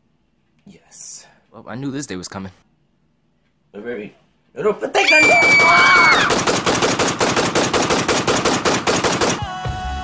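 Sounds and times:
rapid automatic gunfire: 5.3 - 9.5
music: 9.3 - 10.0.

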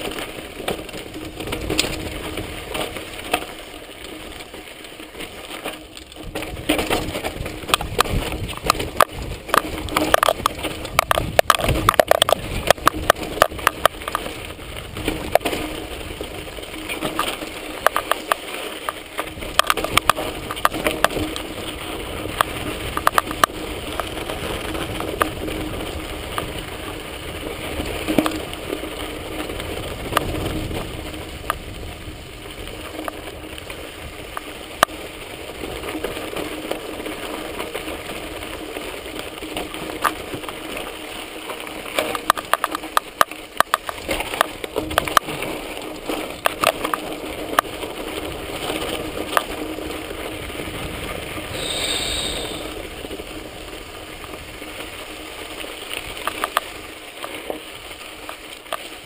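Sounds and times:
bike rattling and knocking: 0.0 - 59.0
bike tyres on dirt and stones: 0.0 - 59.0.

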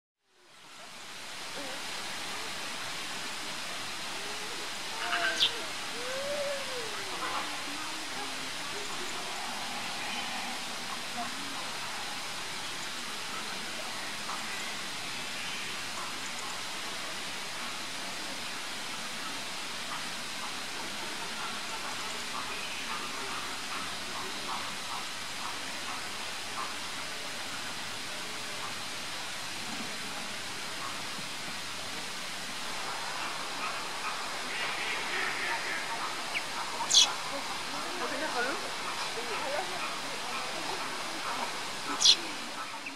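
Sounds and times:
faint indistinct voices: 0.2 - 42.9
outdoor background hiss: 0.2 - 42.9.

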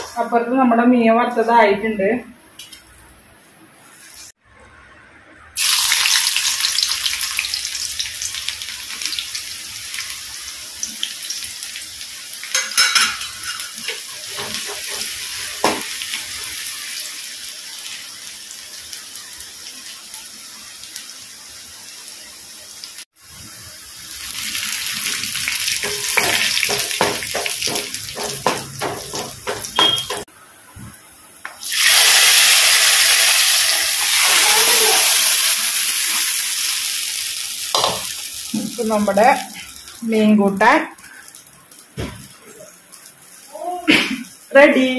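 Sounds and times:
shallots sizzling in hot oil: 5.6 - 30.3, 31.0 - 44.9
wooden spatula knocking pan: 25.8 - 30.3.

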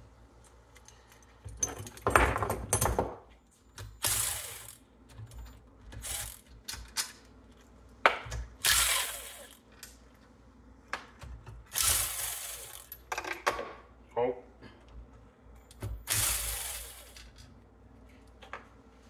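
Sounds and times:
cordless drill running: 4.0 - 4.8, 8.6 - 9.6, 11.7 - 12.9, 16.1 - 17.2.

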